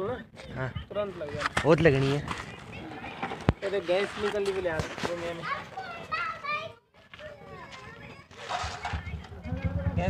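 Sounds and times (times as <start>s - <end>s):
children talking: 0.0s - 9.9s.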